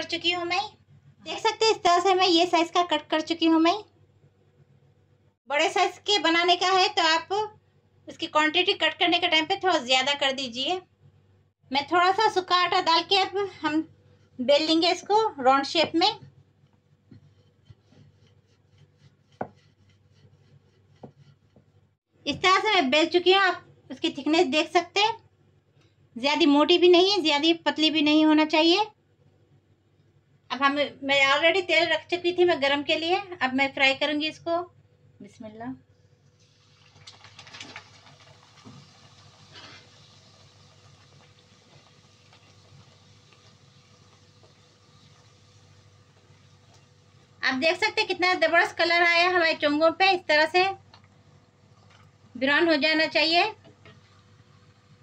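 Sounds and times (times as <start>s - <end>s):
rolling pin rubbing on dough: 16.2s - 21.9s
dough sizzling in hot oil: 36.1s - 55.0s.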